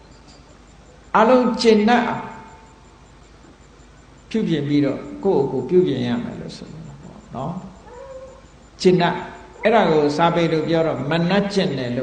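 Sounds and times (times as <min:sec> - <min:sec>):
man speaking: 0:01.2 - 0:02.4, 0:04.3 - 0:07.8, 0:08.8 - 0:12.0
faint cat meow: 0:07.8 - 0:08.4.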